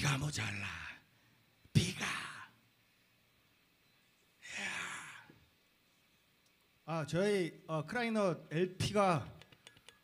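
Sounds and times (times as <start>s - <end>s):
man sighing: 4.4s - 5.4s.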